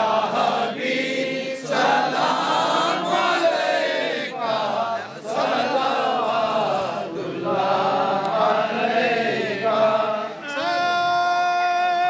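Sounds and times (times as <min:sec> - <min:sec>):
crowd chanting: 0:00.0 - 0:11.3.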